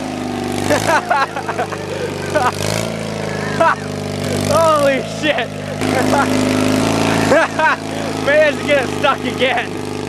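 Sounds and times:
small tractor engine running: 0.0s - 10.0s
person yelling: 4.4s - 6.2s.

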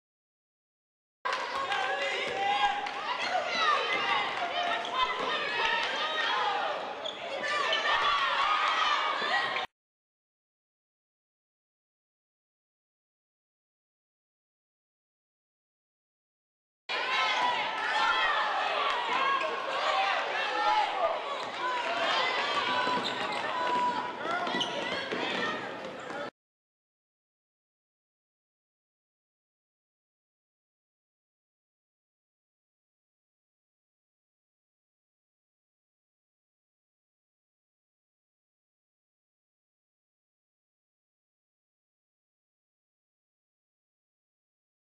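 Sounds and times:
sneakers squeaking: 7.0s - 8.1s, 22.2s - 26.3s
players calling out: 16.9s - 26.3s.

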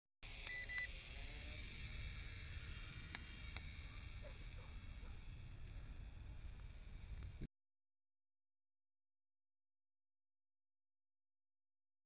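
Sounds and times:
high electronic beeps: 0.4s - 0.9s
low rumble: 1.1s - 7.5s.

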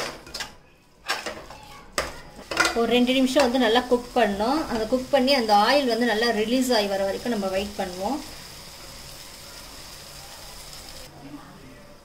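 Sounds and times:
food sizzling in oil: 2.0s - 11.2s.

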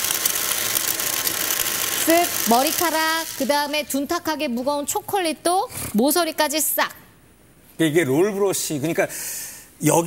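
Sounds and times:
stick vacuum running: 0.0s - 4.4s.

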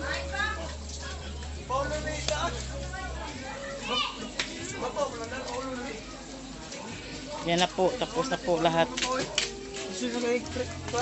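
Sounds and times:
chatter of voices with children: 0.0s - 11.0s.

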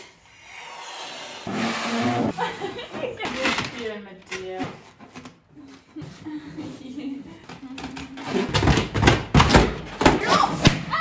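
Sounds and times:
balloon rubbing squeak: 1.2s - 2.4s.

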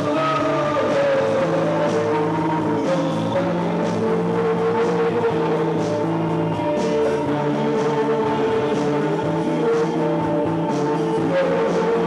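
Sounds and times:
steady bass notes: 0.0s - 12.0s.

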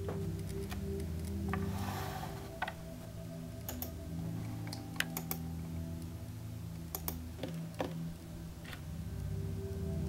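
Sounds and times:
low music bed: 0.0s - 10.0s
keyboard and mouse clicks: 3.6s - 4.0s, 4.7s - 5.5s, 6.9s - 8.0s.

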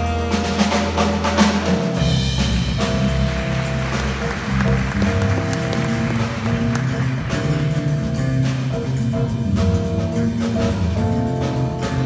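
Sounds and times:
jazz big band playing: 0.0s - 12.0s
moving bass line: 0.0s - 12.0s.

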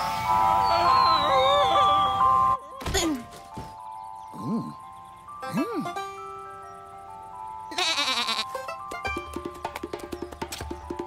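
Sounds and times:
cartoon sheep bleat: 7.7s - 8.5s.

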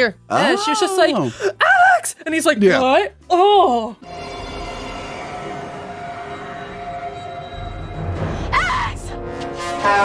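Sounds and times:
tense horror score: 4.0s - 10.0s.

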